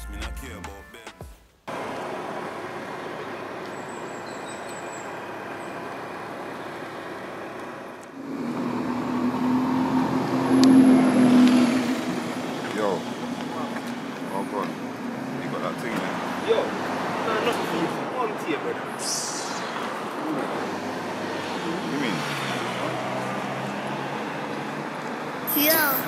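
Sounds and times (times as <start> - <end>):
road traffic: 1.6 - 26.0.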